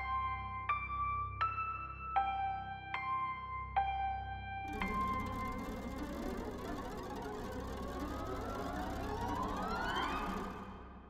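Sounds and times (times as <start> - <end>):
low dense drone: 4.7 - 11.0
thin siren-like tone gliding upward: 4.7 - 11.0.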